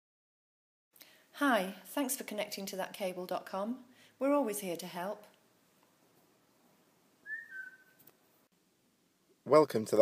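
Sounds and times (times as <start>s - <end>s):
two-note whistle: 7.2s - 8.0s.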